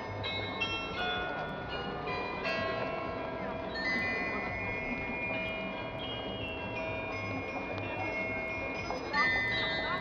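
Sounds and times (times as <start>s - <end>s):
carillon bells playing a melody: 0.0s - 10.0s.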